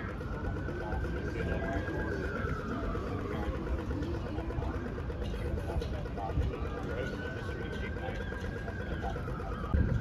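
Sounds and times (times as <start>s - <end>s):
heavy vehicle engine idling: 0.0s - 10.0s
street traffic rumble: 0.0s - 10.0s.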